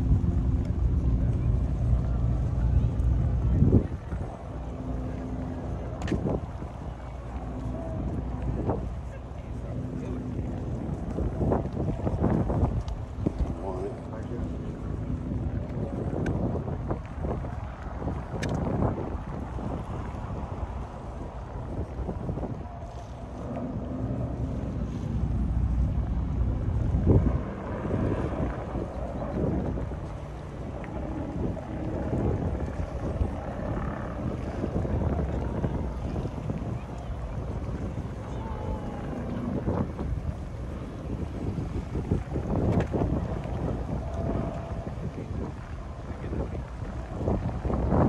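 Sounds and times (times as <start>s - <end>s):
faint voices: 0.0s - 48.0s
wind buffeting microphone: 0.0s - 48.0s.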